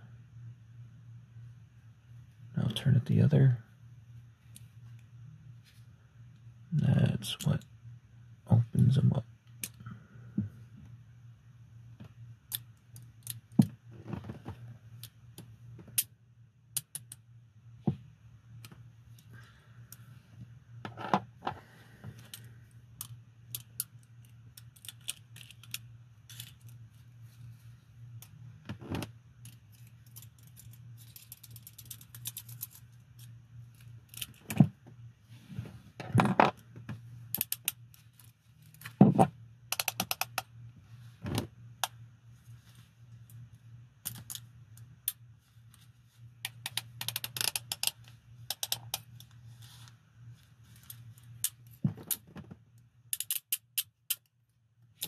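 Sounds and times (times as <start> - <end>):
handcuffs clicking and jangling: 22.2 - 26.8, 29.4 - 34.5, 44.0 - 44.4, 46.4 - 49.1, 53.1 - 54.3.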